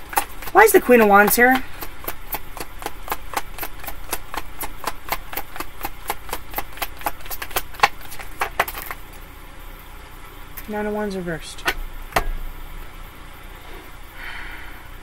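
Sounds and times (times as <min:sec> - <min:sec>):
cards being shuffled: 0:02.0 - 0:09.0.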